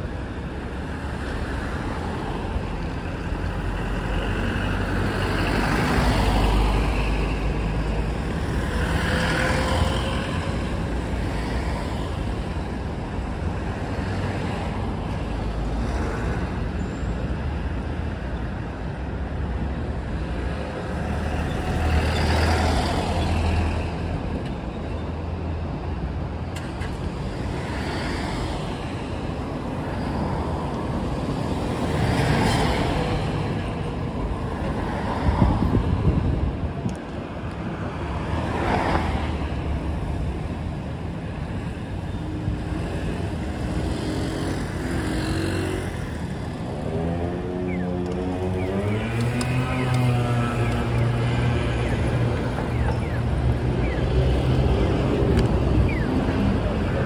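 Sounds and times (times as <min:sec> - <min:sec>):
vehicles driving past: 0:00.0 - 0:57.0.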